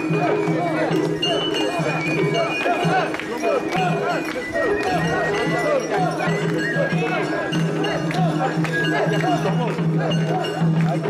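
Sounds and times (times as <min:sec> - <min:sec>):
crowd chanting in rhythm: 0:00.0 - 0:11.0.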